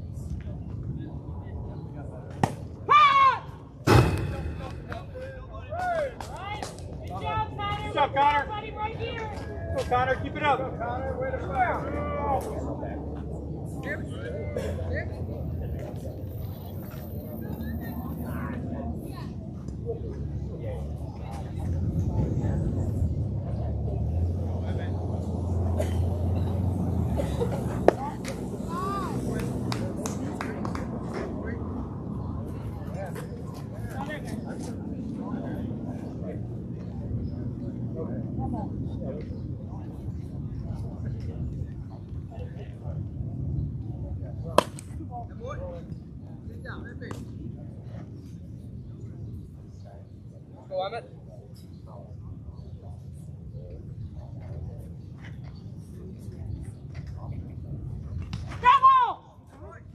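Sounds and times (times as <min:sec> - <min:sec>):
steady low rumble: 0:00.0 - 0:02.9, 0:03.6 - 0:07.2, 0:09.4 - 0:50.4
faint scattered voices: 0:00.0 - 0:59.9
sharp pop: 0:03.8 - 0:05.0.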